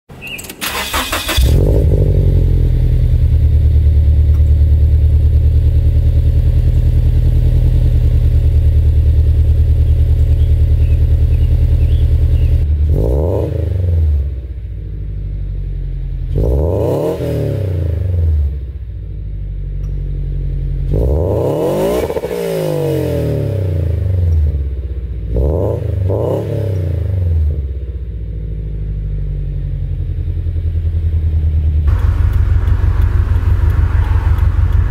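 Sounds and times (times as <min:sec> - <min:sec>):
car engine starting and idling: 0:00.2 - 0:16.8, 0:27.6 - 0:34.9
engine revving: 0:00.6 - 0:14.6, 0:16.2 - 0:18.7, 0:20.8 - 0:24.6, 0:25.2 - 0:27.7, 0:31.8 - 0:34.9.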